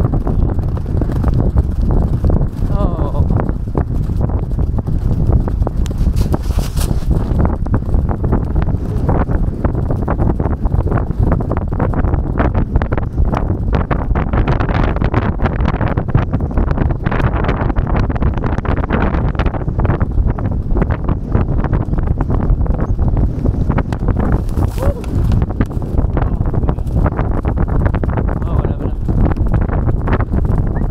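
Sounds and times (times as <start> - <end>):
hoofbeats of galloping horses: 0.0 - 30.9
wind rumble on microphone: 0.0 - 30.9.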